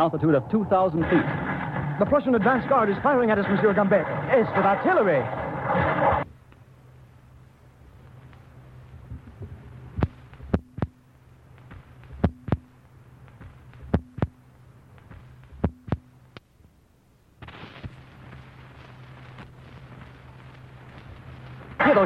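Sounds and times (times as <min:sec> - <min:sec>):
steady hiss: 0:00.0 - 0:22.0
steady low hum: 0:00.0 - 0:22.0
artillery booms: 0:01.0 - 0:04.4.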